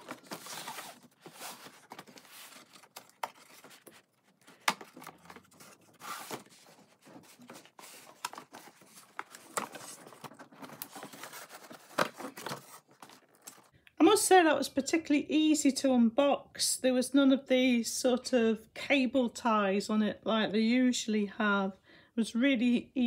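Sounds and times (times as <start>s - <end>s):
cardboard rustling and scraping: 0.0s - 13.7s.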